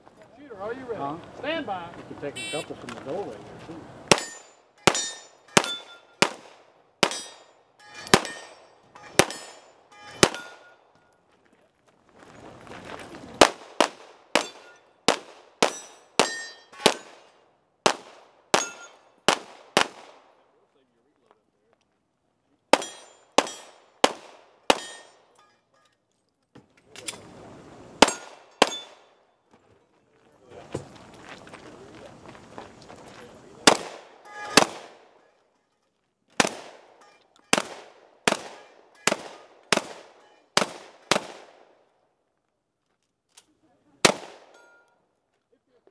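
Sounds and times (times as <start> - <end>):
metallic ring of steel targets: 4.1 - 6.2, 7.0 - 10.9, 14.4 - 14.9, 15.7 - 17.1, 18.6 - 19.2, 22.8 - 23.8, 24.7 - 26.1, 28.0 - 29.0, 44.5 - 45.0
handgun shots: 4.1 - 7.4, 8.0 - 10.7, 28.0 - 29.0, 33.7 - 35.0.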